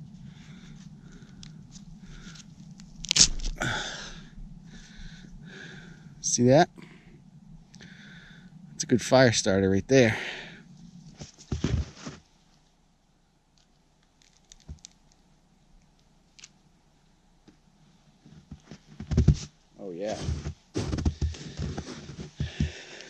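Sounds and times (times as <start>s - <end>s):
grunt of effort: 3.5s - 4.3s
fungus knocking and scraping on wood: 14.2s - 15.0s.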